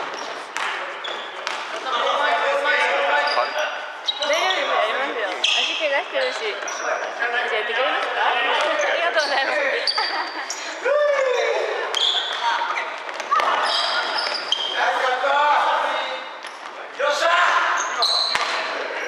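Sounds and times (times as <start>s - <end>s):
sneaker squeaks: 0.0s - 1.8s, 3.2s - 7.3s, 8.0s - 10.8s, 11.6s - 15.2s, 17.6s - 19.0s.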